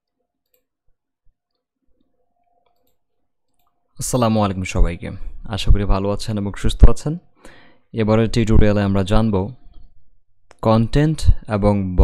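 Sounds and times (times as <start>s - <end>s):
soft scattered clicks: 1.4s - 3.8s.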